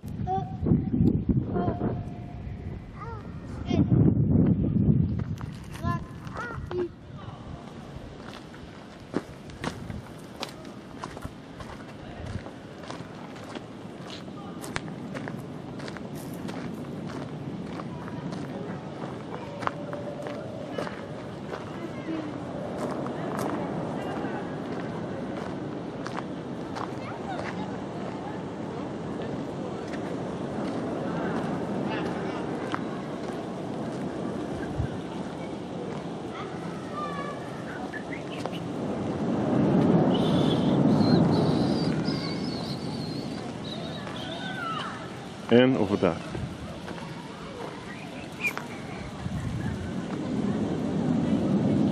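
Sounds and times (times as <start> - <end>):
footsteps on gravel path: 5.1 - 6.9, 7.7 - 40.3, 41.4 - 45.4, 46.1 - 50.5
indistinct chatter: 5.7 - 51.9.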